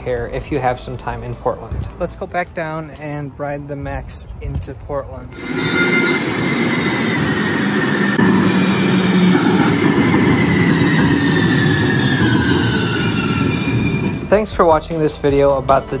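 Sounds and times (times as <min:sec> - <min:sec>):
light-rail train arriving: 0:05.2 - 0:16.0
train whine falling in pitch: 0:05.3 - 0:14.7.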